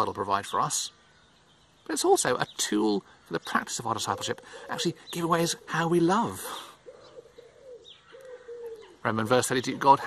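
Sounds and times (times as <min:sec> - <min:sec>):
small bird chirp: 0:00.0 - 0:10.0
pigeon cooing: 0:04.0 - 0:09.1.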